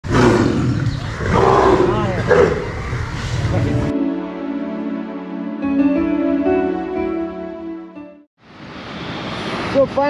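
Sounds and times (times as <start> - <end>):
tiger roaring: 0.0 - 3.5.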